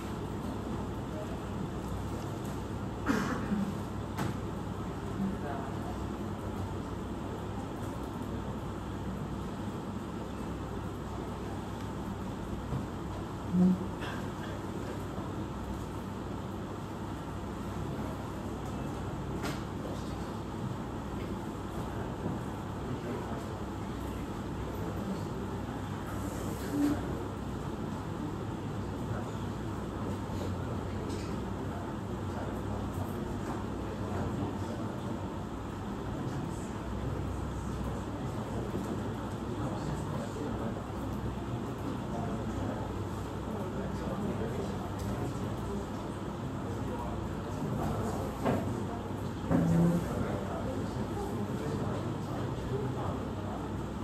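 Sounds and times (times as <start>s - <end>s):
air conditioning hum: 0.0s - 54.0s
low room noise rumble: 0.0s - 54.0s.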